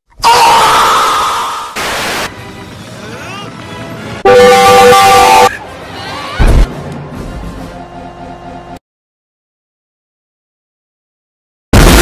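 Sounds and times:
man screaming: 0:00.2 - 0:01.7
tv static hiss: 0:01.8 - 0:02.3.

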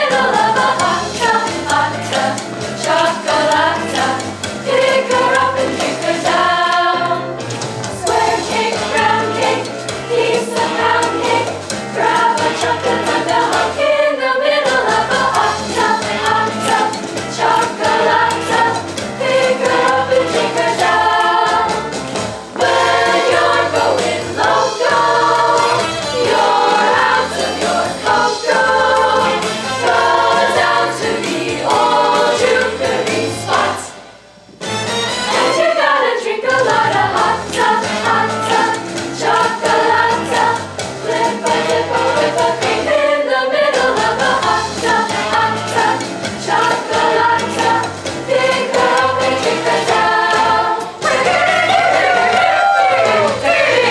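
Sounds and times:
girls' choir singing jazz: 0:00.0 - 0:53.9.

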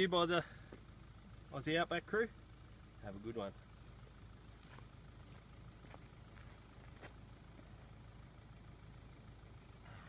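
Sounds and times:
faint low outdoor rumble: 0:00.0 - 0:10.0.

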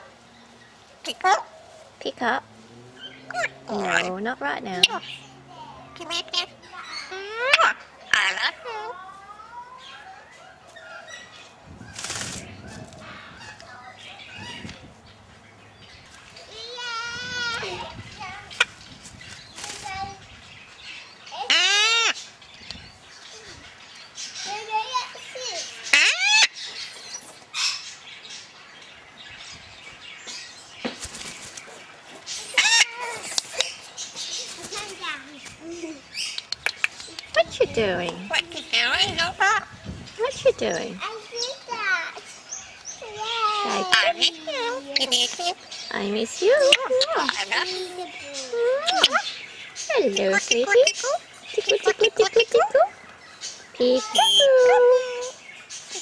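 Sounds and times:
parrot calling: 0:00.0 - 0:11.6, 0:20.9 - 0:22.4, 0:24.2 - 0:28.1, 0:32.2 - 0:34.9, 0:35.7 - 0:56.0.

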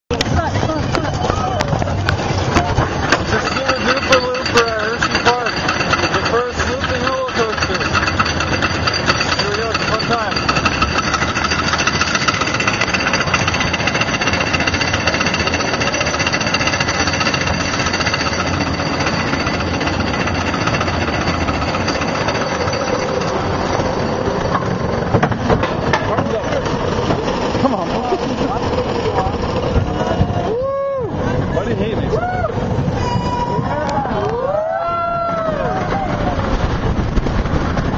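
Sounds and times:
roller coaster train clattering: 0:00.1 - 0:37.9.

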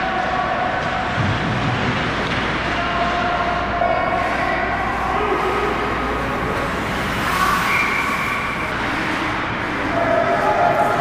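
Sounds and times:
arena background hum: 0:00.0 - 0:11.0
skates on ice: 0:04.1 - 0:11.0.

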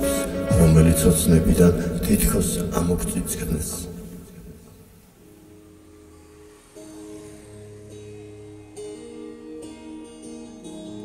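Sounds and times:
amplified guitar notes: 0:00.0 - 0:11.0.

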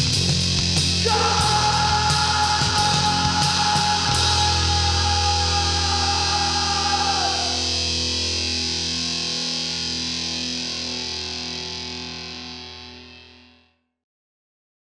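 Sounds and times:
distorted electric guitar chord: 0:02.0 - 0:13.6.

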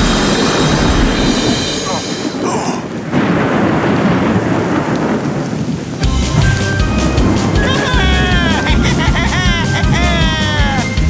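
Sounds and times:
heavy rain: 0:00.0 - 0:11.0
thunder rumbling: 0:00.0 - 0:11.0.

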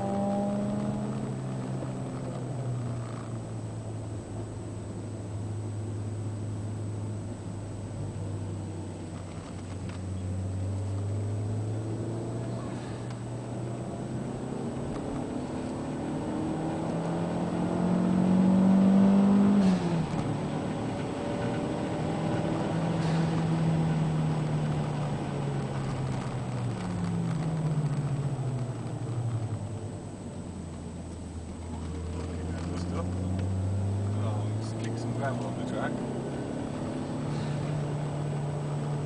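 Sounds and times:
turbocharged car engine accelerating: 0:00.0 - 0:39.0.

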